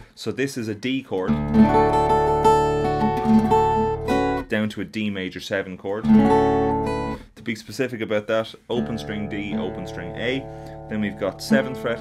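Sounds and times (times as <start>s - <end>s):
fingerpicked acoustic guitar: 1.3s - 4.5s, 6.0s - 7.3s, 8.7s - 12.0s.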